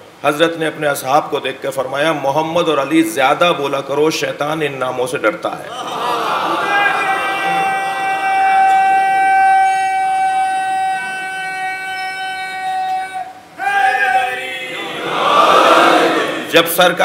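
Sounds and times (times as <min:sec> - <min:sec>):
voices: 0:05.7 - 0:17.0.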